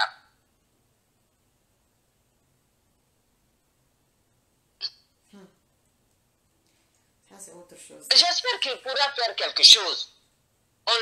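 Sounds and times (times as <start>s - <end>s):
person speaking: 7.3s - 10.2s.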